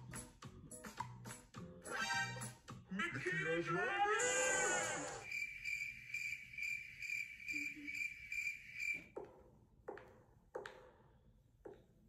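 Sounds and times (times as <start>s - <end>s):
cricket chirping: 5.2s - 9.1s.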